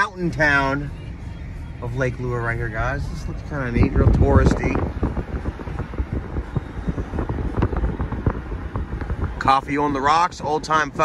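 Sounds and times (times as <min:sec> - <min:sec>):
engine and tyre rumble: 0:00.0 - 0:11.0.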